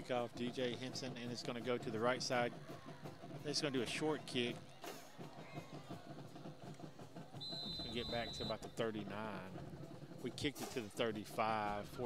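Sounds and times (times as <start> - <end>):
stadium crowd murmur: 0.0 - 12.0
referee's whistle blast: 7.4 - 8.7.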